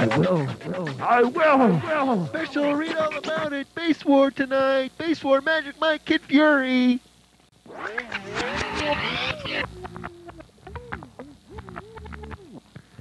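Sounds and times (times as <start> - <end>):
sharp record clicks: 0.0 - 3.5, 7.8 - 12.9
garbled record playing: 0.0 - 6.6, 7.5 - 13.0.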